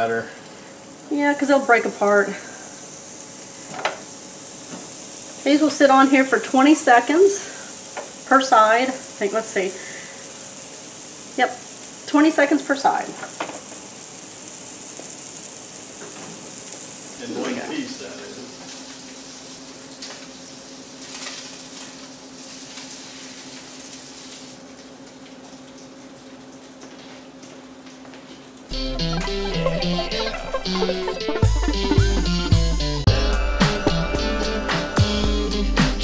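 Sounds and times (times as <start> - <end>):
meat sizzling in a pan: 0.0 - 33.1
loud background music: 28.7 - 36.0.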